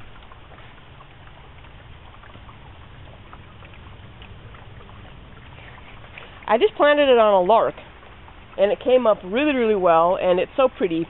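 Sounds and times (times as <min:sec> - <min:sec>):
machinery hum with faint hiss: 0:00.0 - 0:11.0.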